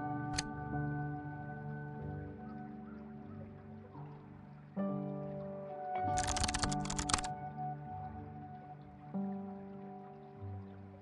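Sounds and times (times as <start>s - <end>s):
soft background music: 0.0s - 11.0s
keyboard typing: 6.2s - 7.3s.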